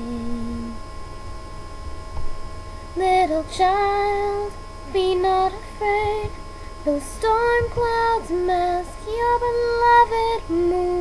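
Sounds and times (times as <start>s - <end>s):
faint steady high tone: 0.0s - 0.8s, 3.0s - 11.0s
low hum: 0.0s - 11.0s.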